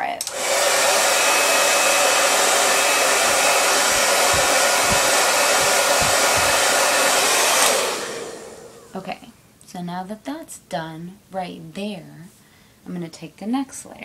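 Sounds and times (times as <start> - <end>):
hair dryer blowing: 0.2 - 9.0.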